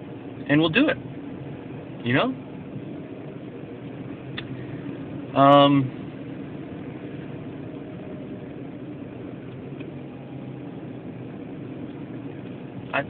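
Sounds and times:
car cabin hum: 0.0s - 13.0s.

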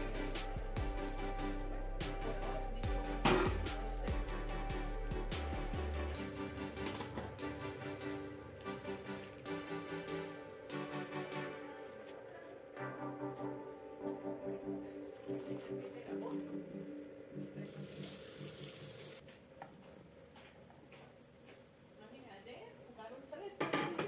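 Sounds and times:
background music: 0.0s - 19.2s.

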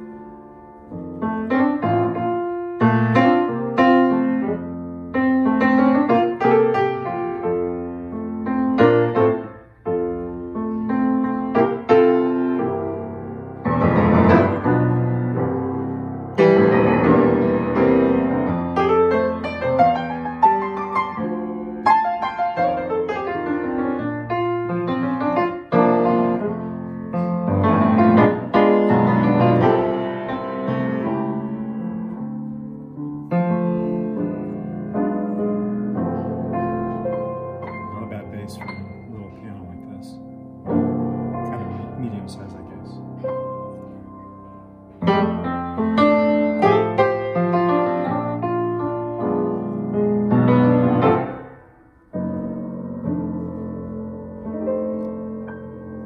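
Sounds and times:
solo piano playing: 0.0s - 56.0s.

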